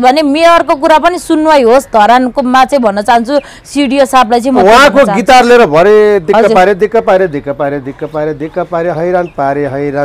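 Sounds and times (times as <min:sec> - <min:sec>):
person talking: 0:04.4 - 0:05.6.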